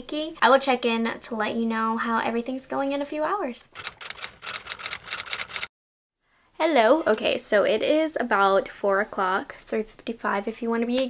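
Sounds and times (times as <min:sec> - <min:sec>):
typewriter key clicks: 0:03.8 - 0:05.7.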